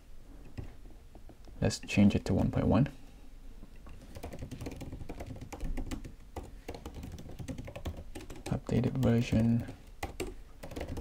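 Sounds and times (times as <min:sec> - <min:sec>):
typing on computer keyboard: 0:03.9 - 0:11.0.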